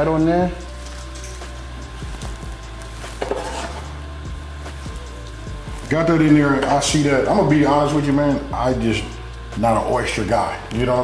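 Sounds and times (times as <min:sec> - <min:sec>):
shrimp sizzling in bowl: 0:00.6 - 0:06.9.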